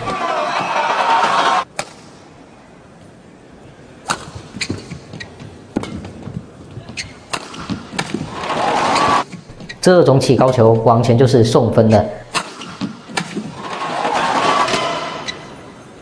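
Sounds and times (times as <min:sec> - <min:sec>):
arena crowd noise: 0:00.0 - 0:01.7.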